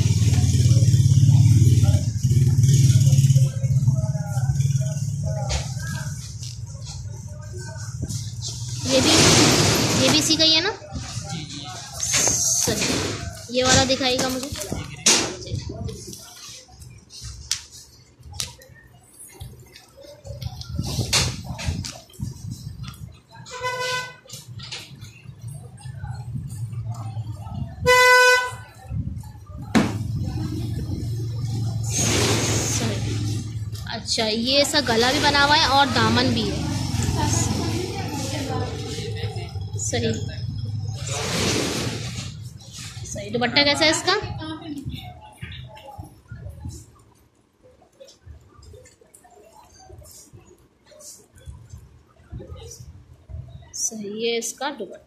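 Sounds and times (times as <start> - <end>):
horn honk: 23.5 - 24.3, 27.8 - 28.7
sharp swish of noise: 31.8 - 33.2.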